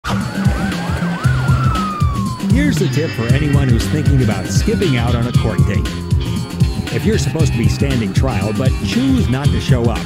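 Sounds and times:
police siren yelping: 0.0s - 6.2s
music with heavy beat: 0.0s - 10.0s
siren tone sliding down: 0.1s - 6.0s.

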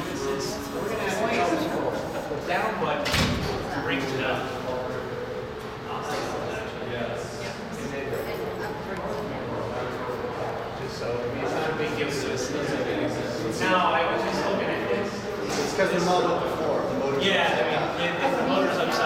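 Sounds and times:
indistinct talking: 0.0s - 19.0s.

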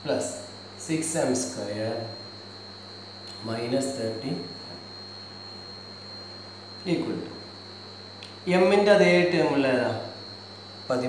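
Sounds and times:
electrical mains hum: 0.0s - 11.0s
high-pitched whine: 0.0s - 11.0s.

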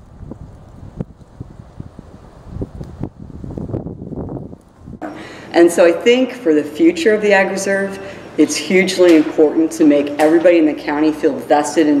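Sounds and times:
wind buffeting microphone: 0.0s - 5.1s.

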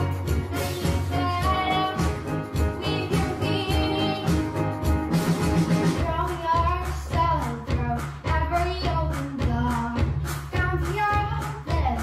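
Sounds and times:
instrumental backing track: 0.0s - 12.0s
girl singing: 0.6s - 4.5s, 6.0s - 12.0s.

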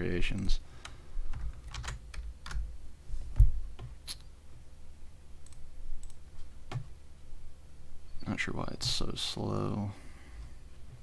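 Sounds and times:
faint steady low hum: 0.0s - 11.0s
computer keyboard clicks: 0.3s - 2.6s.

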